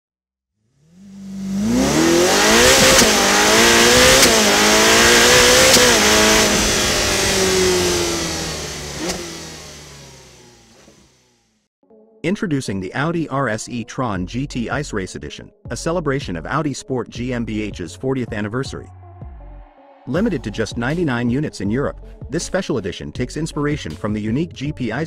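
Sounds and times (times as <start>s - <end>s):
car engine accelerating hard: 0.6s - 11.6s.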